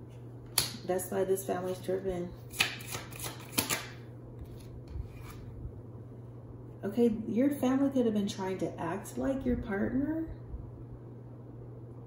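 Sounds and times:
cards swishing and rubbing: 0:01.6 - 0:05.5
low hum: 0:03.9 - 0:12.0.

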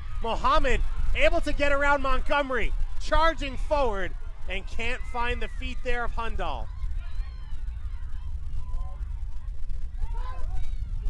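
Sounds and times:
low open-air field rumble: 0:00.0 - 0:11.0.

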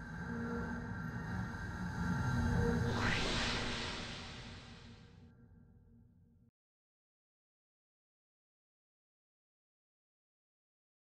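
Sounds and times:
low drone: 0:00.0 - 0:05.1.

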